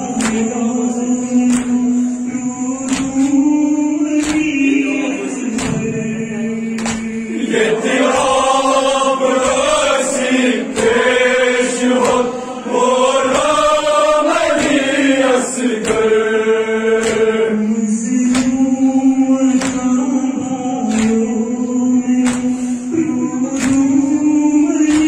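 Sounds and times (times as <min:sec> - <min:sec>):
sharp beats: 0:00.0 - 0:25.0
voices chanting a mourning elegy: 0:00.0 - 0:25.0.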